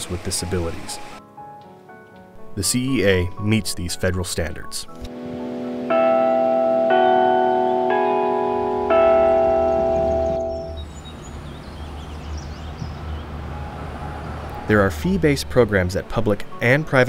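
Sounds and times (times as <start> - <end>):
clock tower bells chiming: 5.7 - 10.8.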